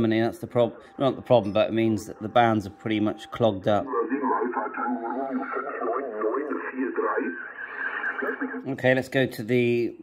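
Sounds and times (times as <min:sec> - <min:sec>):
radio voice through loudspeaker: 0:03.8 - 0:08.7.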